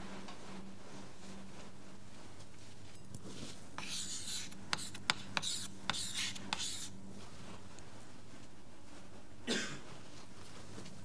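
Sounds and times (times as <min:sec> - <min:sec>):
pen scratching handwriting: 0:03.8 - 0:06.9.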